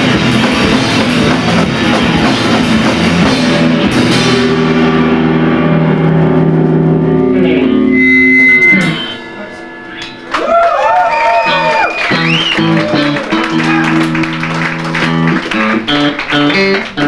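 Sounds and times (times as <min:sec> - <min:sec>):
held guitar chords ringing: 0:00.0 - 0:17.0
live rock band playing: 0:00.0 - 0:17.0.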